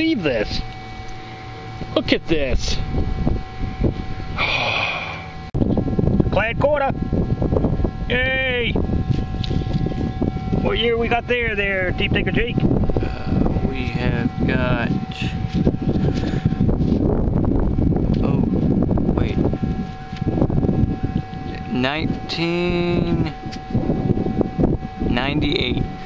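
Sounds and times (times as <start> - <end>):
low rumble on microphone: 0.0 - 26.0
person exhaling breathily: 4.4 - 5.3.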